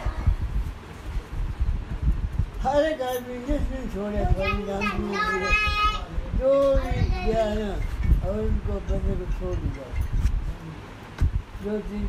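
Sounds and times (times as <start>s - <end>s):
children talking and calling: 0.0s - 0.8s, 4.0s - 8.0s.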